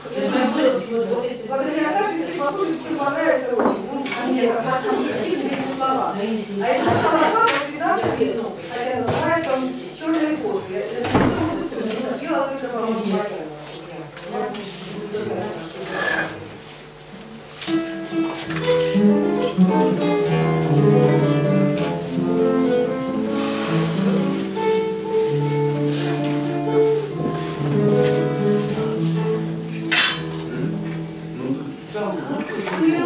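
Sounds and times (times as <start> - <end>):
acoustic guitar: 15.2 - 33.0.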